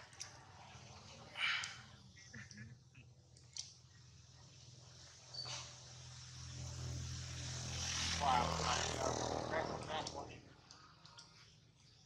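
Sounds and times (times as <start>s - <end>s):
motor engine passing by: 3.9s - 11.2s.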